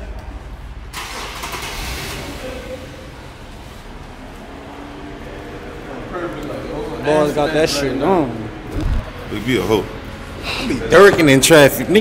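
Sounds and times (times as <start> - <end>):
car rushing past: 8.3 - 10.5.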